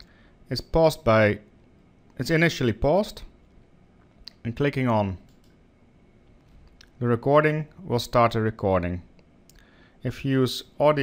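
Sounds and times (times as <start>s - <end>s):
computer mouse click: 5.2s - 5.6s.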